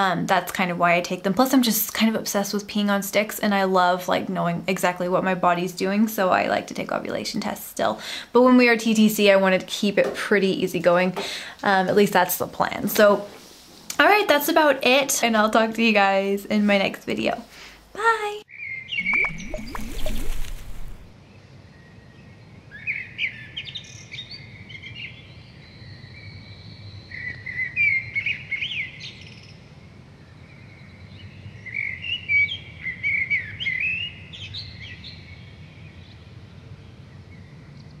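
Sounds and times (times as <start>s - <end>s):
small birds chirping: 18.9s - 21.1s.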